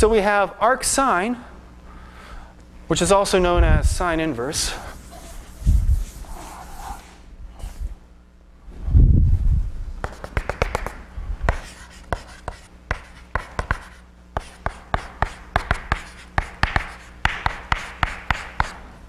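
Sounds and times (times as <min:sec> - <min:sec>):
chalk writing on blackboard: 0:04.9 - 0:07.2, 0:10.0 - 0:18.8.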